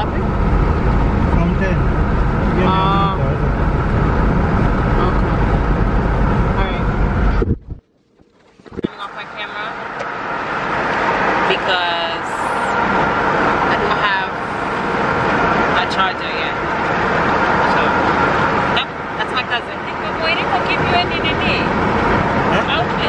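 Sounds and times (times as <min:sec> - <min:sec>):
car road and engine noise: 0:00.0 - 0:23.0
voices talking: 0:08.7 - 0:10.0, 0:11.4 - 0:12.9, 0:13.6 - 0:14.8, 0:15.7 - 0:16.8, 0:17.5 - 0:23.0.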